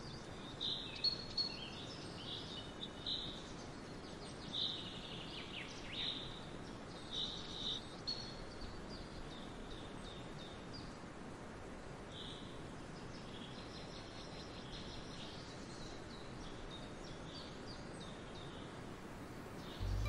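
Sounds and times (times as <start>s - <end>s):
low background noise: 0.0s - 20.0s
small birds chirping: 12.2s - 20.0s.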